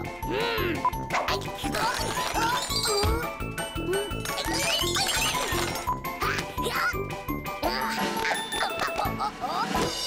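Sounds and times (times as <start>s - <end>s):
upbeat cartoon music: 0.0s - 10.0s
high-pitched squeaky vocal sounds: 0.3s - 7.0s.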